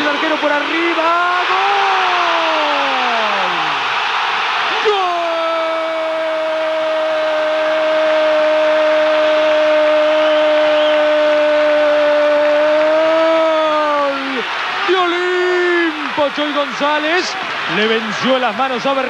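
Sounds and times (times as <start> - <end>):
commentator's long held shout: 0.0 - 3.9, 4.6 - 19.0
steady crowd noise: 0.0 - 19.0.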